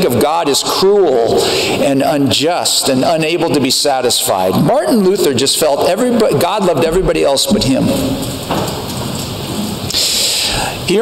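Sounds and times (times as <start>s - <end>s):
steady rushing hiss: 0.0s - 11.0s.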